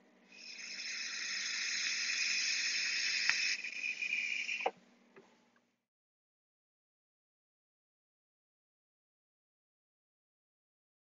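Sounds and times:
vape hissing: 0.4s - 4.7s.

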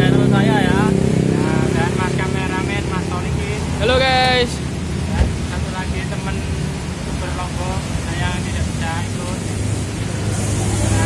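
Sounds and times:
vehicle engine running: 0.0s - 7.3s, 7.9s - 11.0s
men talking: 0.0s - 11.0s.

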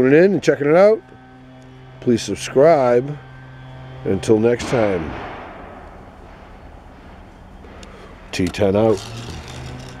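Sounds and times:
faint hum: 0.0s - 10.0s.

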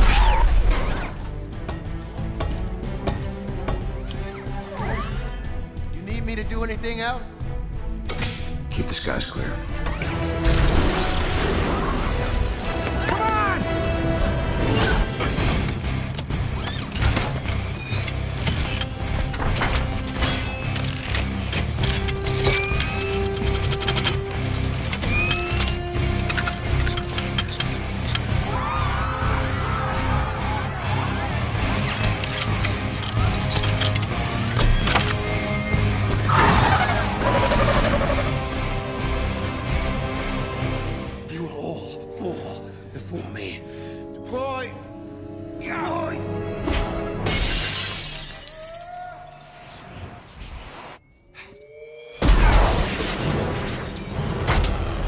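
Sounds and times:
dramatic film score: 0.0s - 55.0s
metallic clicks clanks and whirs: 15.6s - 28.4s, 31.4s - 35.6s.

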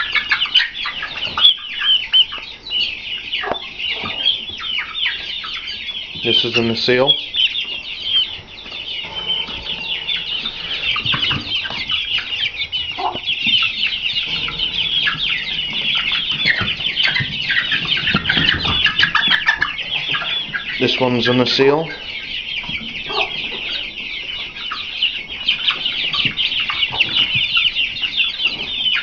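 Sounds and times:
chicks peeping and cheeping: 0.0s - 29.0s.

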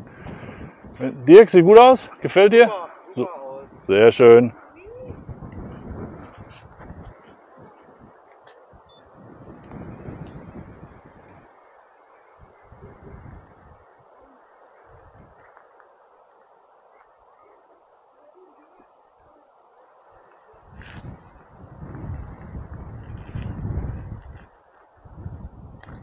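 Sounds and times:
wind rumbling on microphone: 0.0s - 26.0s.

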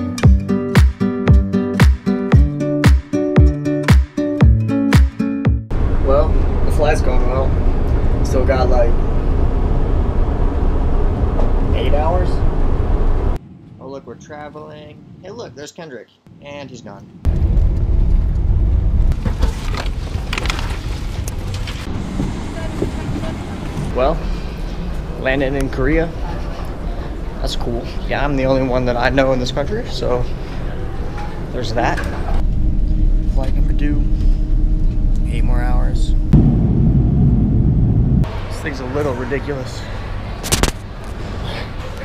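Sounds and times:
airliner engines and wheels rumbling: 5.7s - 13.8s, 17.0s - 42.0s.

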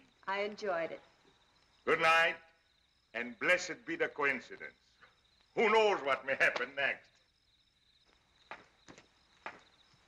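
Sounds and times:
crickets chirping: 0.0s - 10.0s
footsteps on flagstone: 8.0s - 10.0s.

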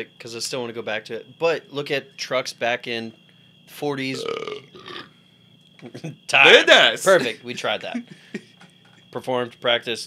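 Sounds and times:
man burping loudly: 4.1s - 5.2s
man laughing: 5.9s - 8.8s.

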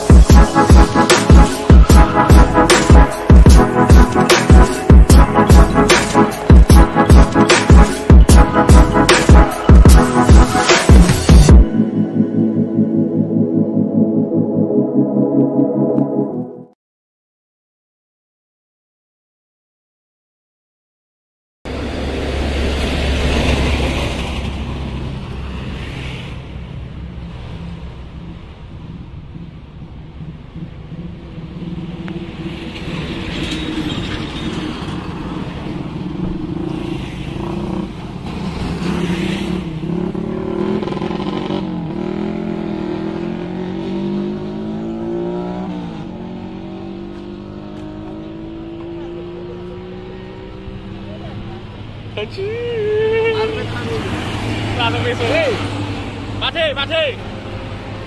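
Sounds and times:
vehicles passing: 0.0s - 16.4s, 21.7s - 58.0s
heavy vehicle engines: 21.7s - 58.0s.

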